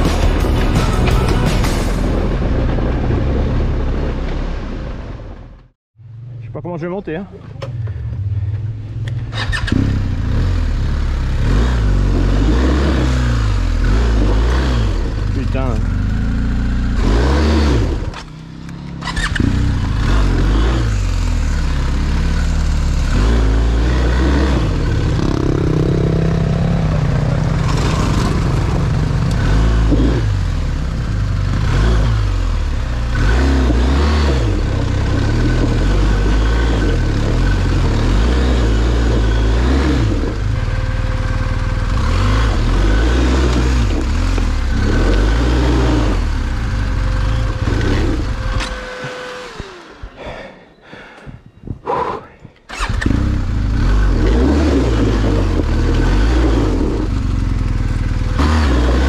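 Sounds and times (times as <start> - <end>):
motorcycle engine revving: 6.0 - 50.6, 52.7 - 59.0.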